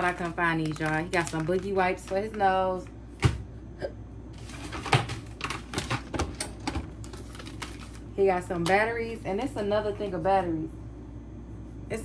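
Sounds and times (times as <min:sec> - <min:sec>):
plastic packaging crinkling: 0:00.0 - 0:02.9, 0:04.4 - 0:08.7.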